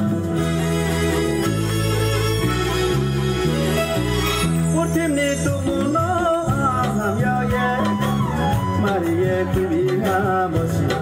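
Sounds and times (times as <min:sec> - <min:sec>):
amplified instrumental accompaniment: 0:00.0 - 0:11.0.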